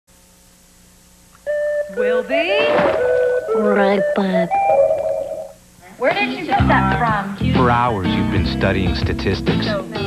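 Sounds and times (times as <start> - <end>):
tape hiss and hum: 0.1 - 10.0
electronic beep tone: 3.0 - 5.6.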